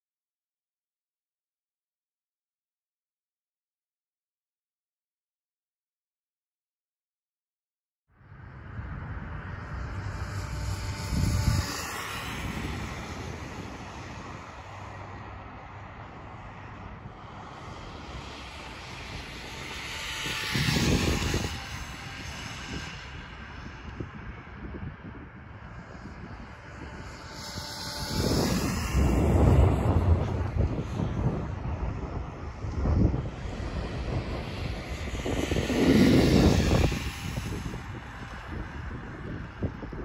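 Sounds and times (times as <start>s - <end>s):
electric motor whining: 26.0s - 38.4s.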